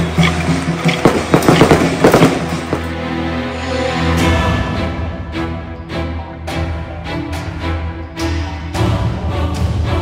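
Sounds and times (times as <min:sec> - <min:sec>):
music: 0:00.0 - 0:10.0
firecrackers crackling: 0:00.2 - 0:02.9.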